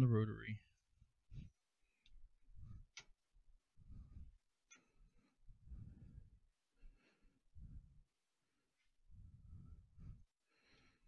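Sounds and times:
soft low rumbles: 0.0 - 10.4.

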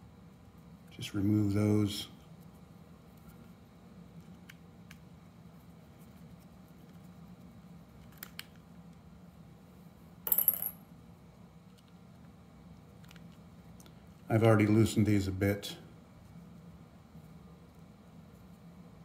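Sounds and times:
small metal object clattering: 10.3 - 10.8.

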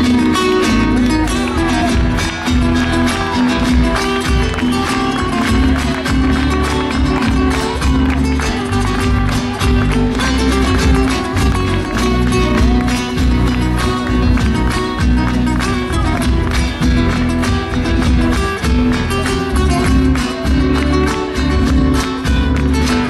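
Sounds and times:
acoustic guitars: 0.0 - 23.0
live band playing: 0.0 - 23.0.

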